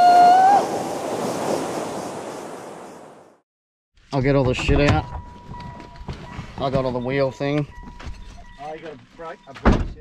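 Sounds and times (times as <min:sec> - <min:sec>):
man shouting woo: 0:00.0 - 0:00.6
wind noise: 0:00.0 - 0:03.4.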